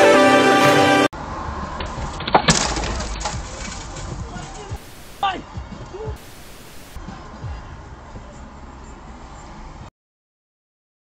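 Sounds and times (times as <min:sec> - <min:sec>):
car road rumble: 0:01.2 - 0:09.9.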